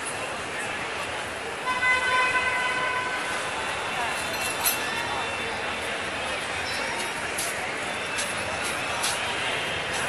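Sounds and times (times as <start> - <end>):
crowd hubbub: 0.0 - 10.0.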